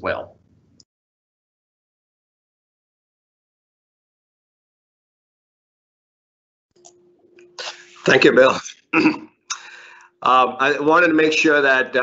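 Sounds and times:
faint steady hum: 6.8s - 12.0s
sharp sniff-like breath: 7.6s - 8.1s.

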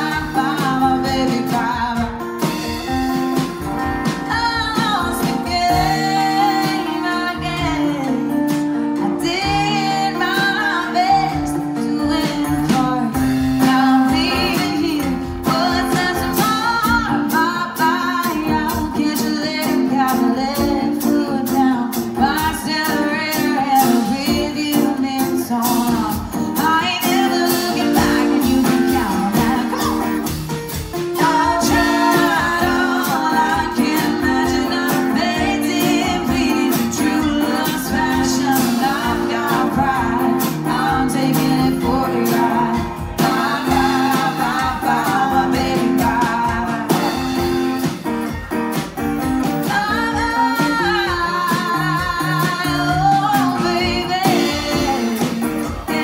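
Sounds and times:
woman singing: 0.0s - 48.8s, 49.4s - 56.0s
drum kit: 0.0s - 56.0s
strummed acoustic guitar: 0.0s - 56.0s.

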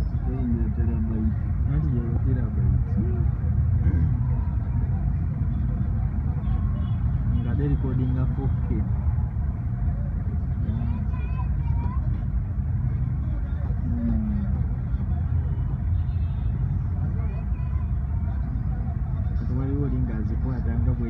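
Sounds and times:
faint voices talking: 0.0s - 21.0s
vehicle engines idling: 0.0s - 21.0s.

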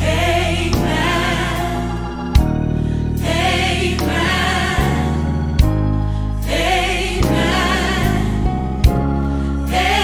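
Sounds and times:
gospel choir singing: 0.0s - 10.0s
instrumental backing with bass: 0.0s - 10.0s.

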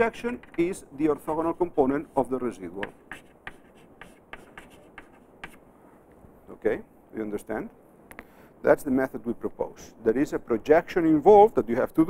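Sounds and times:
chalk strokes on chalkboard: 0.4s - 5.6s.

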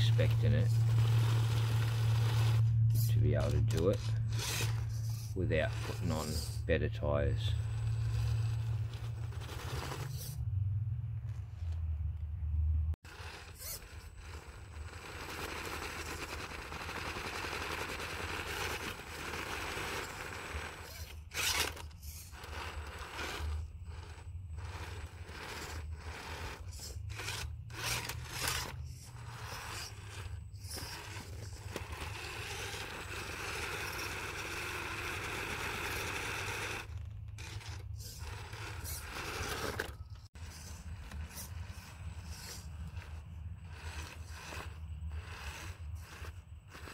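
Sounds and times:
rc car motor running in bursts: 0.0s - 10.4s, 13.0s - 46.9s
tyres scraping on rock: 0.0s - 10.4s, 13.0s - 46.9s.

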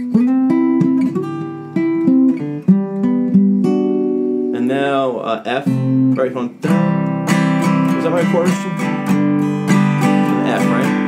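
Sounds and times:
acoustic guitar picked notes: 0.0s - 11.0s
person speaking: 4.5s - 6.8s, 7.8s - 9.2s, 10.2s - 11.0s.

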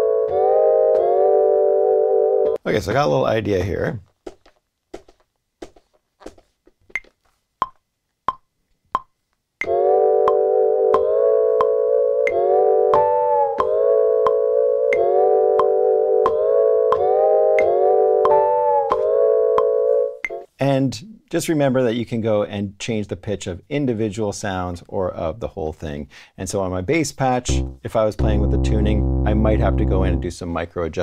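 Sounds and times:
sampled chords playing: 0.0s - 2.6s, 9.6s - 20.4s, 27.5s - 30.3s.

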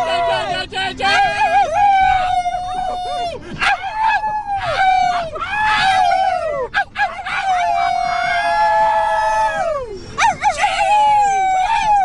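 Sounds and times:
people howling like wolves: 0.0s - 12.0s.

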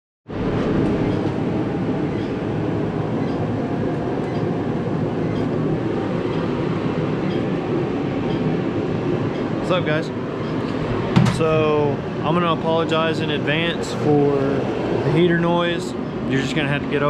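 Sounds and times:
space heater rushing: 0.3s - 17.0s.

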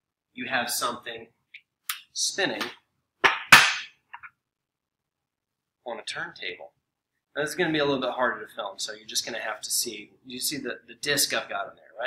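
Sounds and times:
sharp knocks with clattering: 2.6s - 4.3s.

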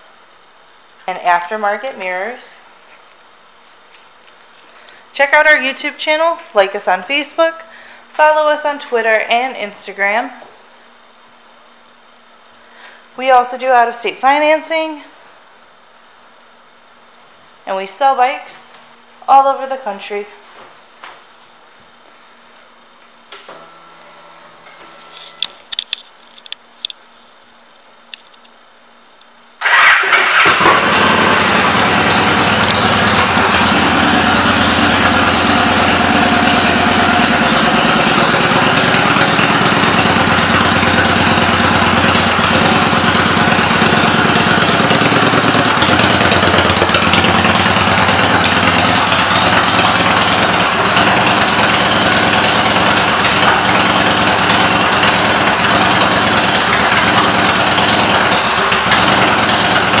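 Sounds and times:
motorcycle engine idling: 29.6s - 60.0s.

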